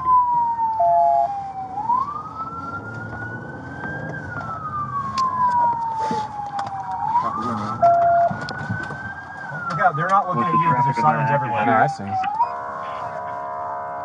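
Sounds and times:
emergency siren wailing: 0.0 - 14.0.

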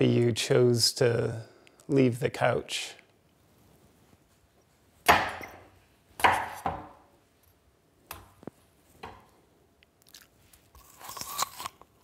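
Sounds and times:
knife chopping: 5.0 - 5.6, 6.2 - 7.0.

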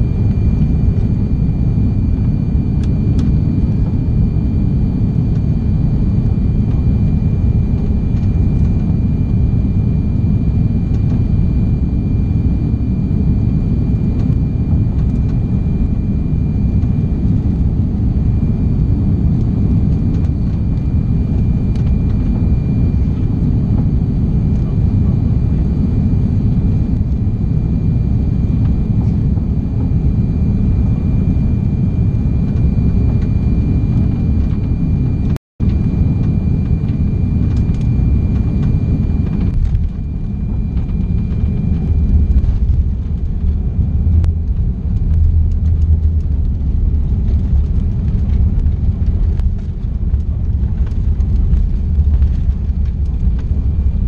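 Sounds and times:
airliner engines and airflow rumble: 0.0 - 54.0
low rumble of landing roll: 35.2 - 54.0.

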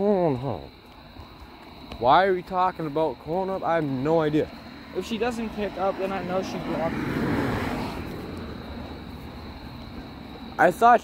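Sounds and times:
passing vehicle rushing: 4.0 - 10.8.

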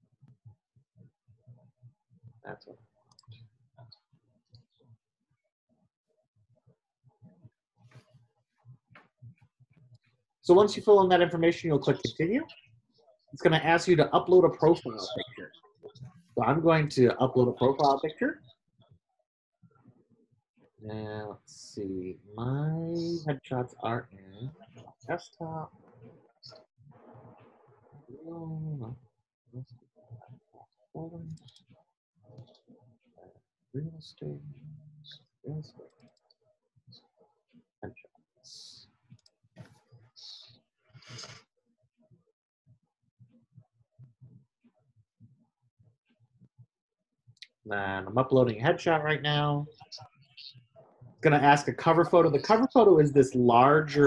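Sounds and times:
person speaking quietly: 10.5 - 12.4, 13.4 - 15.5, 16.4 - 18.4, 20.9 - 24.5, 33.8 - 35.9.

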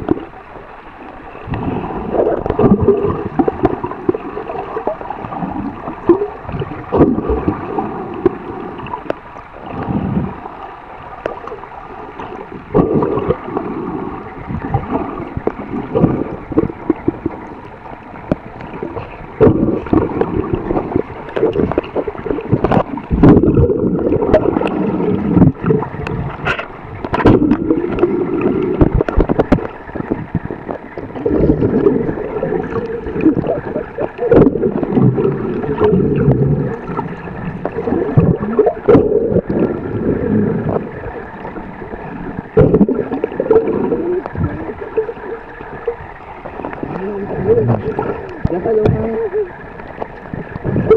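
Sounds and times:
sharp underwater knocks and clicks: 0.0 - 0.4, 1.4 - 10.0, 11.1 - 11.6, 12.2 - 13.7, 14.4 - 50.9
water churning and gurgling underwater: 0.0 - 50.9.

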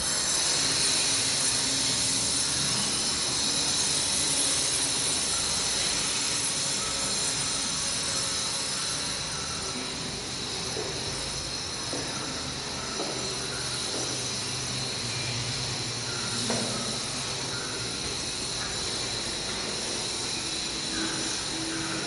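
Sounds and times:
steady hiss: 0.0 - 22.0.

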